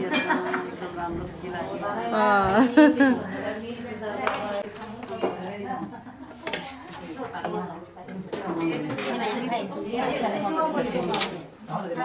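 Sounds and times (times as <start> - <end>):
women chattering: 0.0 - 12.0
spoon and plates clinking on pots: 7.4 - 9.4.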